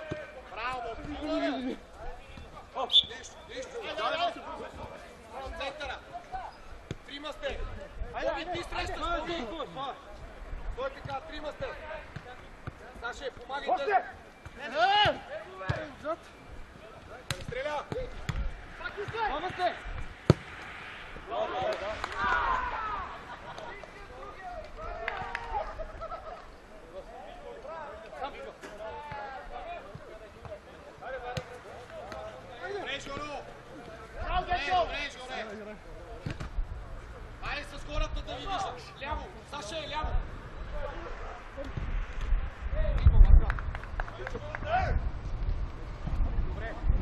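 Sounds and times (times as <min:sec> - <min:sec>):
distant shouts from players: 0:13.6 - 0:16.4, 0:21.1 - 0:23.2
football being kicked: 0:17.3 - 0:20.5.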